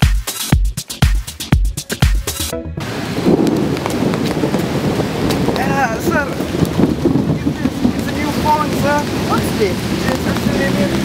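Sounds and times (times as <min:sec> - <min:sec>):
wind buffeting microphone: 0:02.8 - 0:11.0.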